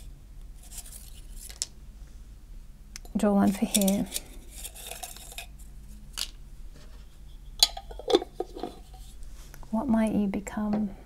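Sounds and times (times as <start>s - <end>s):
glass jar and lid clinking: 7.6s - 8.7s.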